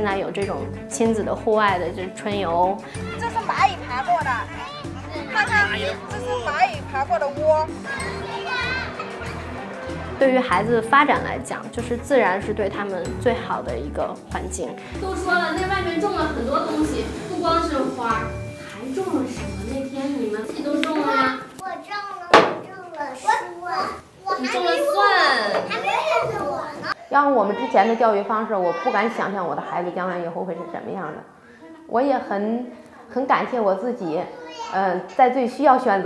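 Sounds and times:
woman speaking: 0:00.0 - 0:04.5, 0:05.3 - 0:07.8, 0:10.2 - 0:21.4
children calling and playing: 0:00.4 - 0:36.0
child speaking in high voice: 0:21.0 - 0:26.9, 0:34.3 - 0:35.0.

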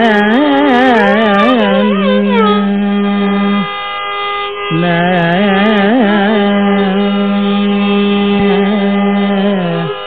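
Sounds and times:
person singing classical melody: 0:00.0 - 0:10.0
violin: 0:00.0 - 0:10.0
steady drone: 0:00.8 - 0:10.0.

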